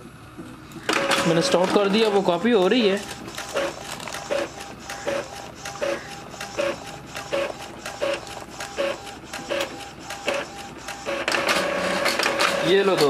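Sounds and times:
printer mechanism whirring and clicking: 0.4 - 13.0.

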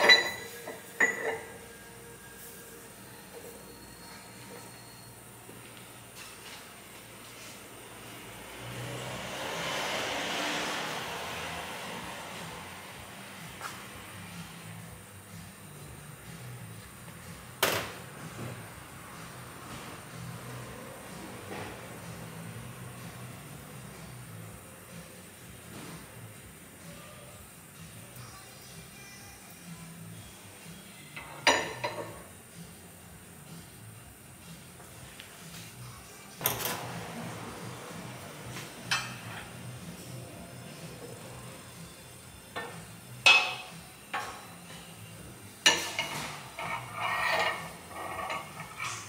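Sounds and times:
metal clink: 0.0 - 1.5.

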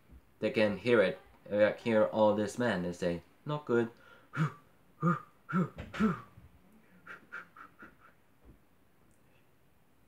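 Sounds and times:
faint short vocal sounds: 4.3 - 8.2
man making whoo sounds: 4.4 - 6.3.

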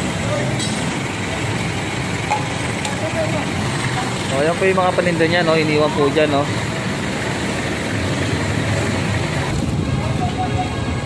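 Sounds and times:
street noise: 0.0 - 11.0
vehicle engine idling: 0.0 - 11.0.

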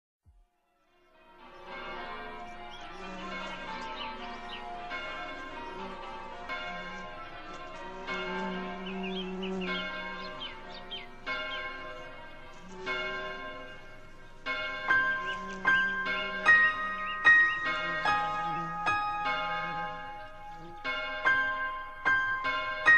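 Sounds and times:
church bells ringing: 0.9 - 22.9
birds chirping: 1.5 - 22.0.

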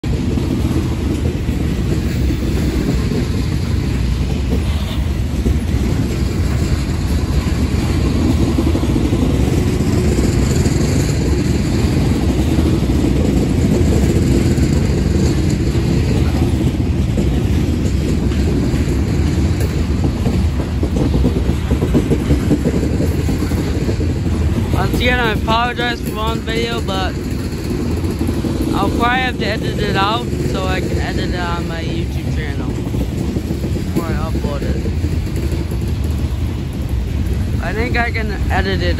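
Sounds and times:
train wheels rumbling on rails: 0.0 - 38.9.

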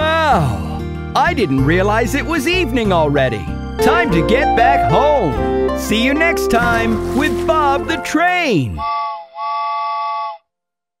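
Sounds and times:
cartoon steam-train whistle: 8.7 - 10.5.

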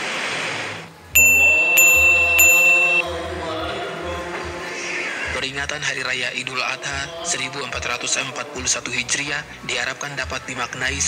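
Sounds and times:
bright chime dings: 1.2 - 3.1
ringing tone: 1.2 - 3.1.

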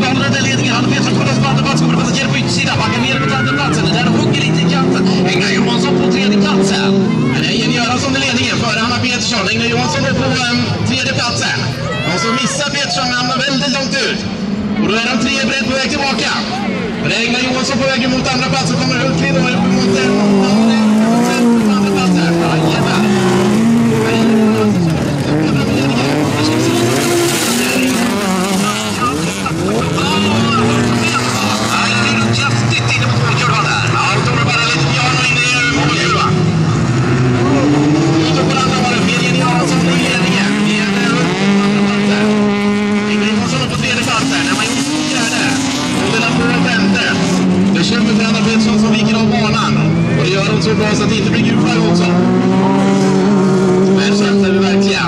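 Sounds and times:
race car engines revving: 0.0 - 55.0.

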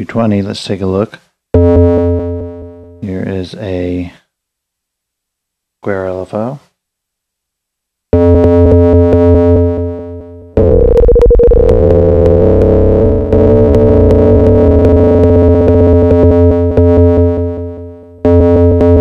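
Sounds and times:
buzzy fm synth tones: 8.2 - 19.0.

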